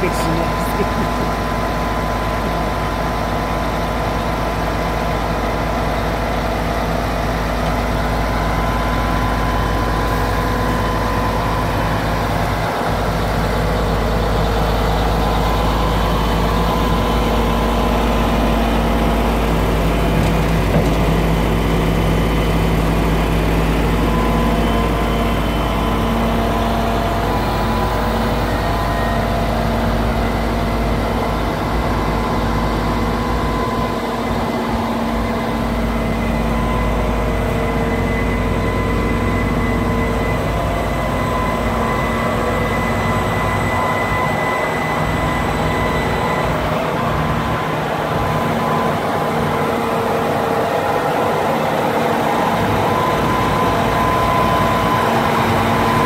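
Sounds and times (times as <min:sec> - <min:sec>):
diesel truck engine idling: 0:00.0 - 0:56.0.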